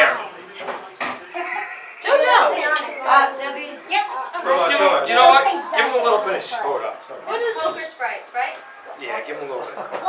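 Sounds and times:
conversation voices: 0.0s - 10.0s
person laughing loudly: 1.2s - 2.2s.

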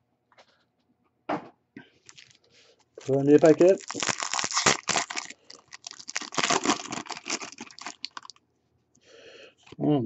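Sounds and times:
foil wrapper tearing and crinkling: 2.1s - 2.4s, 3.0s - 8.4s.

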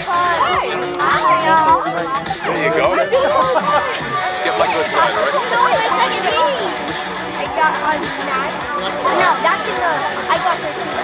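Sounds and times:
background music: 0.0s - 11.0s
children chattering: 0.0s - 11.0s.

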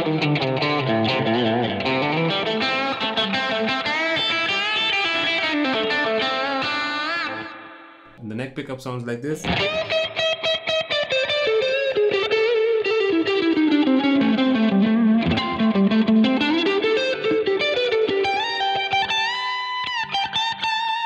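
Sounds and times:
bluesy electric guitar lead: 0.0s - 8.2s, 9.4s - 21.0s.

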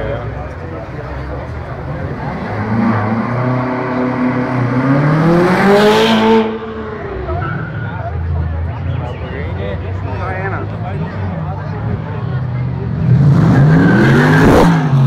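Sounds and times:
sports car engine revving: 2.0s - 7.4s.

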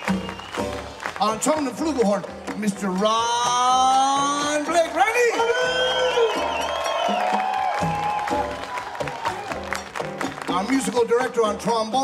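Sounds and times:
audience whooping and cheering: 0.0s - 1.7s, 3.8s - 11.0s.

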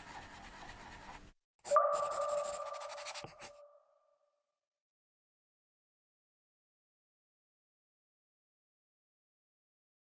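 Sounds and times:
two-tone chime ping: 1.7s - 3.0s.

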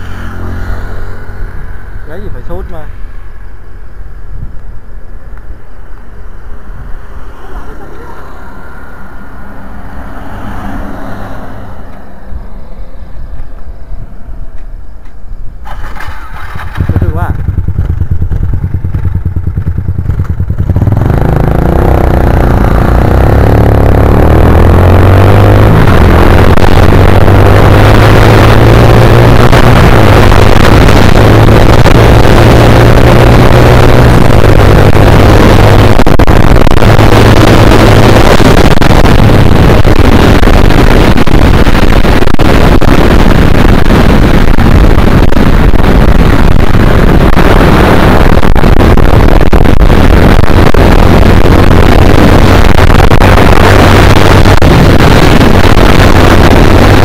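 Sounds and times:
motorcycle engine: 0.0s - 57.0s
wind on microphone: 0.0s - 57.0s.

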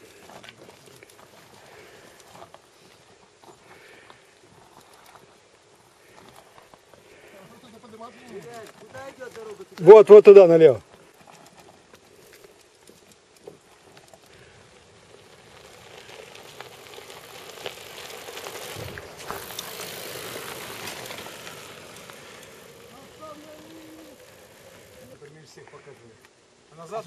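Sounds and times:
bike rattles and clicks: 0.0s - 25.3s
bike tyres hissing on gravel: 0.0s - 26.2s.

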